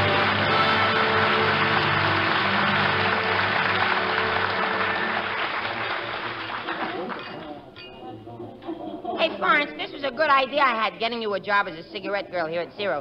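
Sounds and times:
orchestra playing: 0:00.0 - 0:05.9
audience applauding: 0:00.0 - 0:07.6.

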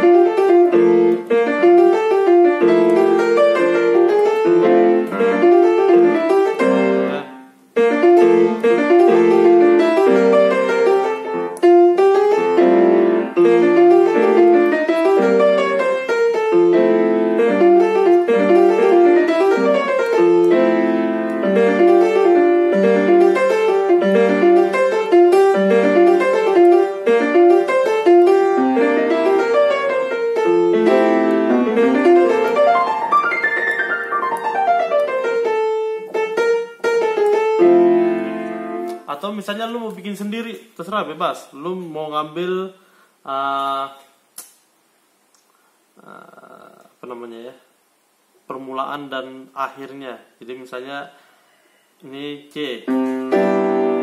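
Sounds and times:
piano playing runs over chords: 0:00.0 - 0:39.1, 0:52.9 - 0:54.0.

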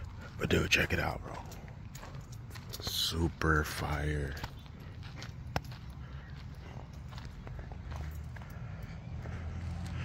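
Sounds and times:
footsteps on dry dirt: 0:00.0 - 0:10.0.

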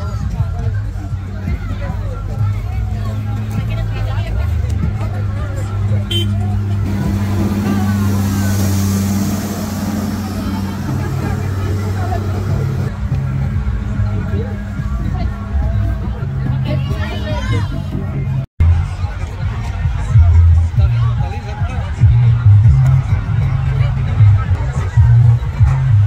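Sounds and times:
crowd chatter: 0:00.0 - 0:26.0
diesel engine droning: 0:00.0 - 0:26.0.

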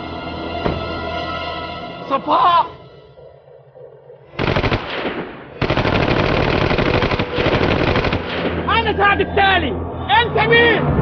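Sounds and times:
submachine gun automatic fire: 0:04.4 - 0:08.6.

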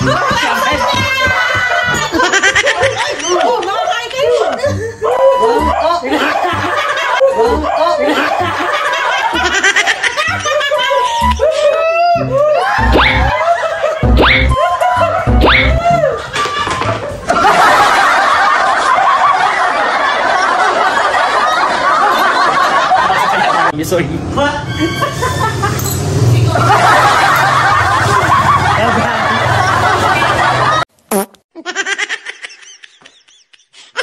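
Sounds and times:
many people laughing: 0:00.0 - 0:23.8, 0:24.8 - 0:30.9, 0:31.6 - 0:34.0
comic falling pitch effect: 0:12.2 - 0:13.4, 0:14.0 - 0:16.1.

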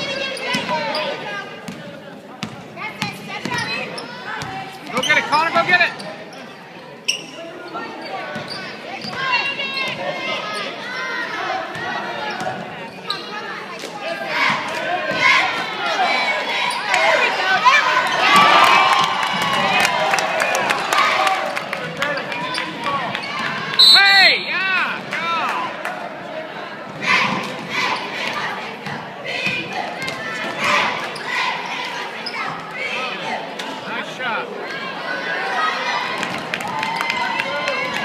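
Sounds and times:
shouts and cheers: 0:16.8 - 0:21.7.

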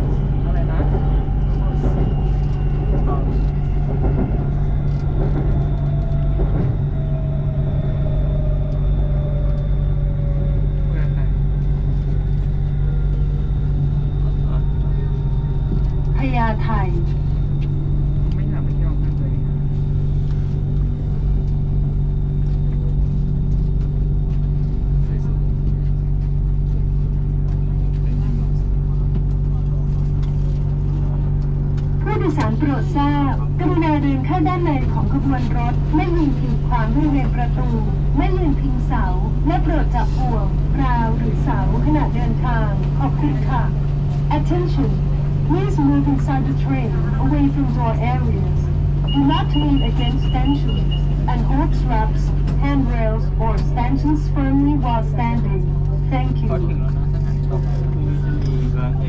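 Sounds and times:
train low rumble and hum: 0:00.0 - 0:59.0.

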